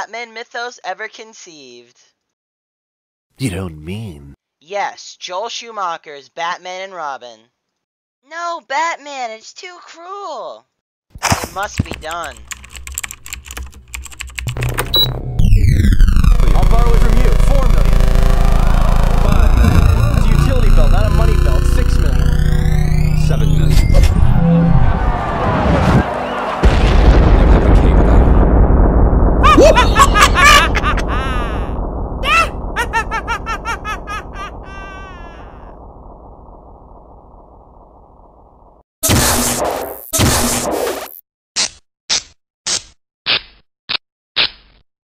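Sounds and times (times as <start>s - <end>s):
rapid keyboard-like clicking: 11.7s - 14.9s
deep rumbling hum: 14.6s - 38.8s
loud falling sweep: 15.2s - 38.7s
high-pitched laugh: 29.4s - 35.7s.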